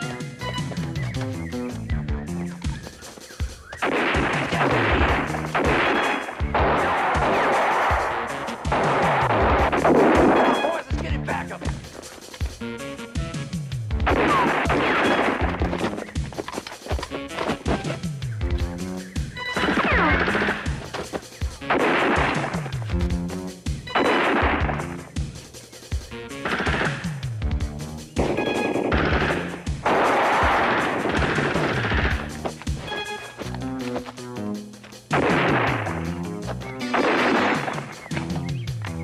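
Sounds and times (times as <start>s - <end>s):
background music: 0.0s - 39.0s
rapid gunfire bursts: 3.8s - 10.7s, 21.6s - 22.8s, 28.2s - 32.3s.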